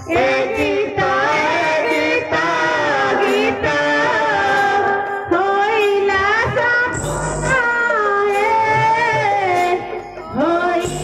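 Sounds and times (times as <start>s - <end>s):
women singing into a microphone: 0.0s - 11.0s.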